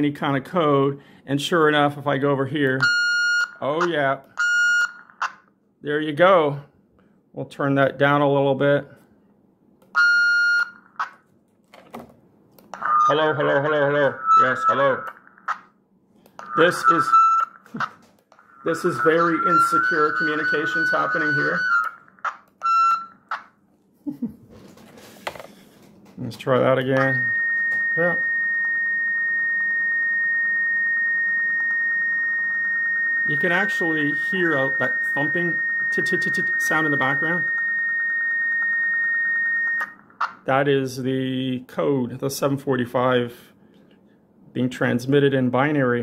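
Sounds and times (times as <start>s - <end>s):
intercom electronic beep: 2.8s - 5.5s, 10.0s - 11.1s, 12.8s - 15.7s, 16.4s - 23.3s, 26.8s - 40.4s
steady high-pitched tone: 12.8s - 15.5s, 16.4s - 23.2s, 26.4s - 40.2s.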